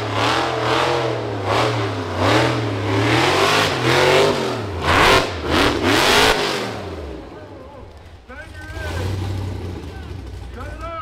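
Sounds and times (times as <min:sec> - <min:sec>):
low engine rumble: 0:00.0 - 0:11.0.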